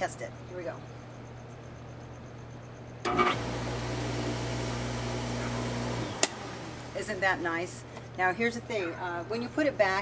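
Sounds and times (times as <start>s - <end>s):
pool pump motor hum: 3.0s - 7.7s.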